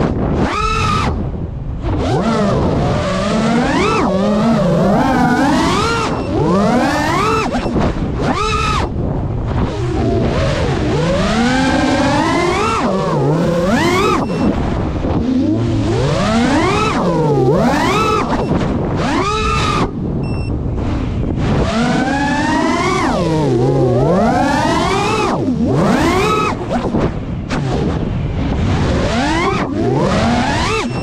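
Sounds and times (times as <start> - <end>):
drone motors whining: 0.0 - 31.0.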